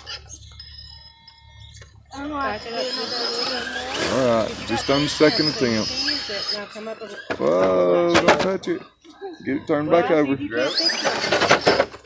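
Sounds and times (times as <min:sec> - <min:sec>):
faint electric motor whine: 0:00.0 - 0:12.0
people's voices: 0:02.1 - 0:11.9.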